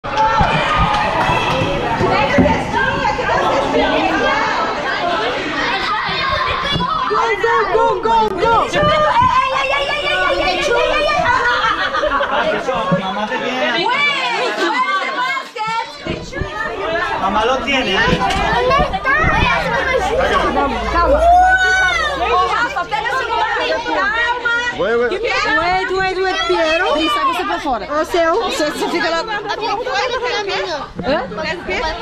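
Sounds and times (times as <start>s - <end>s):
children and adults chattering: 0.0s - 32.0s.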